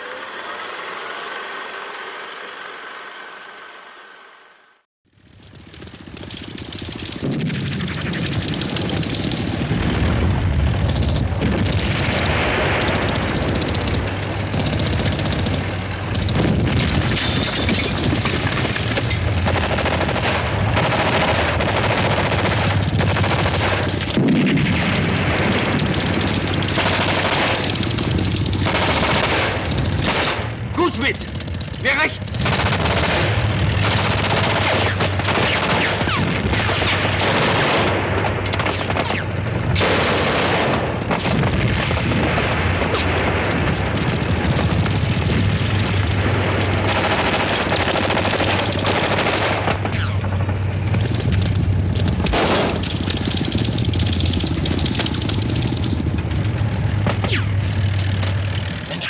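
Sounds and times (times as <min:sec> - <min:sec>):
low rumble: 0:05.1 - 0:58.9
machine-gun and rifle fire: 0:05.5 - 0:58.0.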